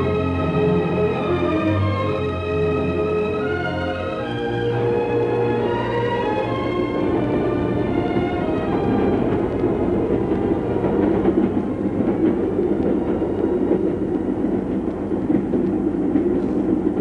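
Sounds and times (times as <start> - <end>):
carriages rattling: 0.0 - 17.0
train rumbling: 0.0 - 17.0.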